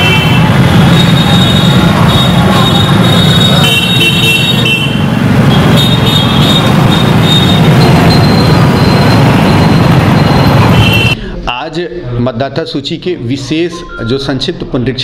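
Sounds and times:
vehicle engines passing: 0:00.0 - 0:12.2.

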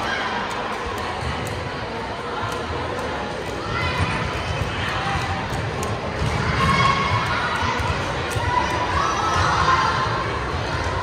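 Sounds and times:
spectators chattering and calling out: 0:00.0 - 0:11.0.

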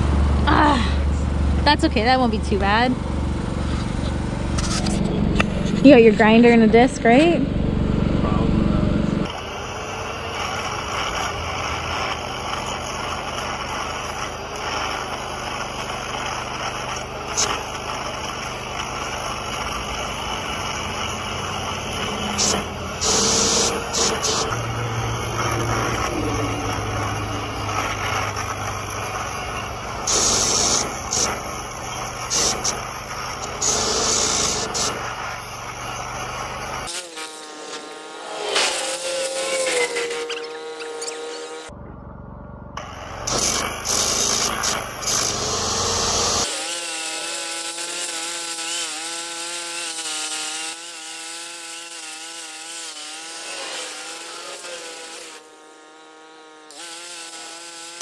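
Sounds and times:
angle grinder cutting steel: 0:01.3 - 0:07.6, 0:09.0 - 0:41.8, 0:42.8 - 0:58.0.

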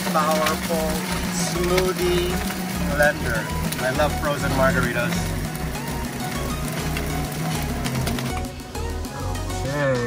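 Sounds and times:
blender blending ice: 0:00.0 - 0:09.6
background music with beat: 0:00.0 - 0:10.0.

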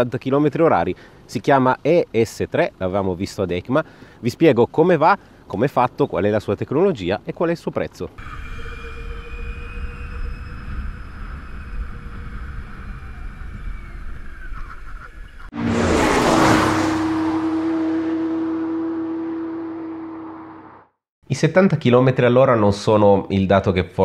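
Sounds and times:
electric motor whine: 0:08.2 - 0:20.3
wind and road rush: 0:10.6 - 0:21.0.

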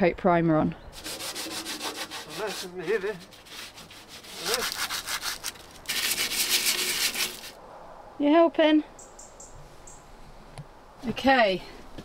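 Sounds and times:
scouring pad scrubbing metal: 0:01.0 - 0:07.6.

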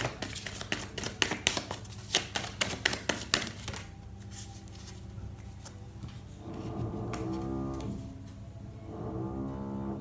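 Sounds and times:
playing cards clicking: 0:00.0 - 0:04.0.

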